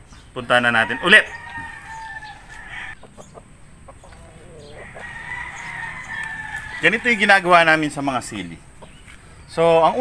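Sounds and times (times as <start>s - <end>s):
rooster crowing: 0.7s - 3.0s, 4.2s - 7.8s.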